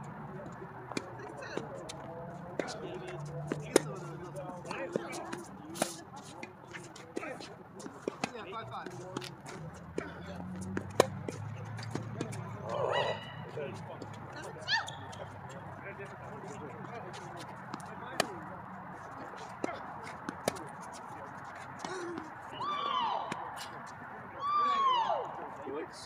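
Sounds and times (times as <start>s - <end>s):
tennis balls struck and bouncing: 0.4s - 24.0s
players calling out: 0.4s - 26.0s.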